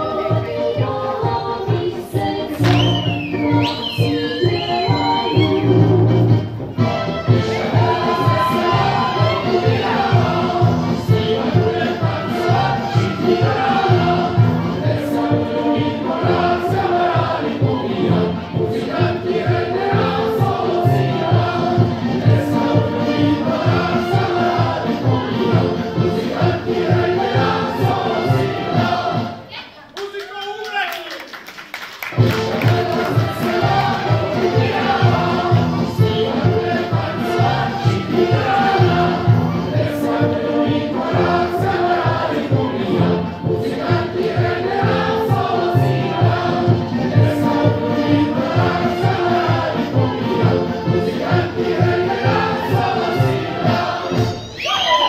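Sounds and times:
folk music with bass beat: 0:00.0 - 0:29.4, 0:32.2 - 0:54.4
group singing in chorus: 0:00.0 - 0:29.5, 0:32.2 - 0:54.9.

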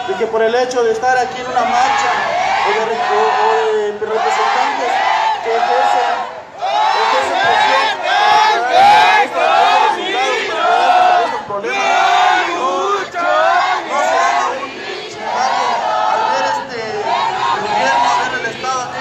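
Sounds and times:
crowd chanting slogans: 0:01.4 - 0:19.0.

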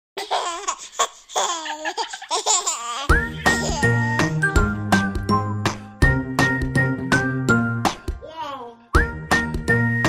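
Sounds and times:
baby giggling: 0:00.2 - 0:04.4
music with held notes and bass: 0:03.1 - 0:08.3, 0:09.0 - 0:10.0.

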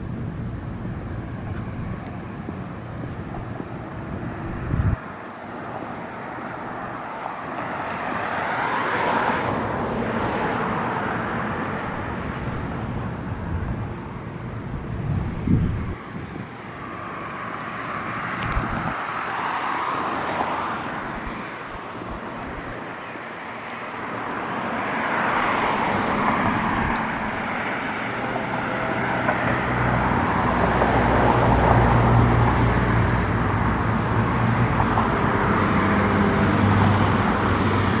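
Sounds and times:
low engine hum: 0:00.0 - 0:07.8, 0:09.4 - 0:19.0
cars passing: 0:00.0 - 0:38.0.

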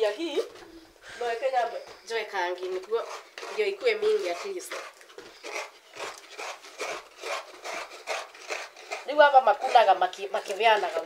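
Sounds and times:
coconut grating rasps: 0:01.5 - 0:11.0.

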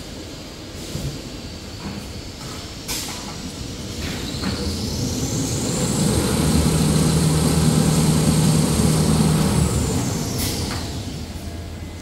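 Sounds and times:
machinery low hum: 0:03.4 - 0:12.0
machinery high whine: 0:03.6 - 0:12.0.

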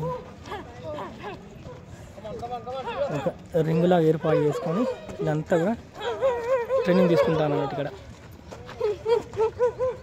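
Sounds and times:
voices shouting encouragement: 0:00.0 - 0:10.0.

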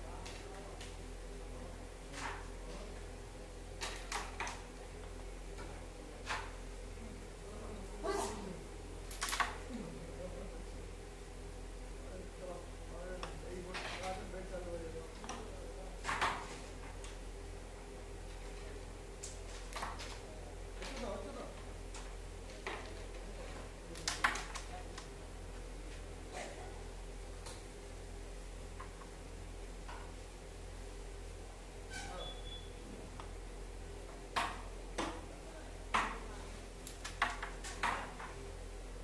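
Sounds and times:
steady low hum: 0:00.0 - 0:39.0.

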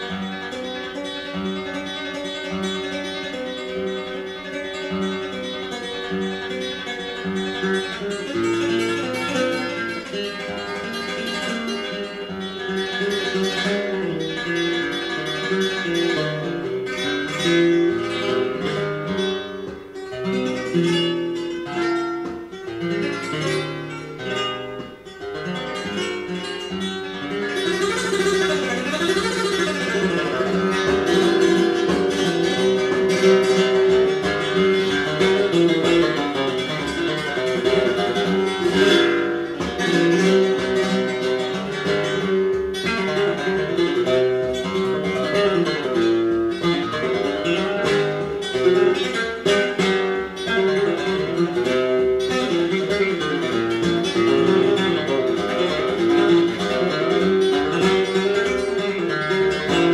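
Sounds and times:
flamenco guitar over loudspeakers: 0:00.0 - 0:59.9.

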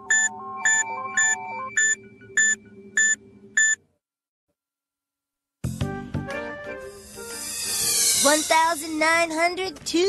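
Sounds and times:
high electronic beeps: 0:00.0 - 0:03.8.

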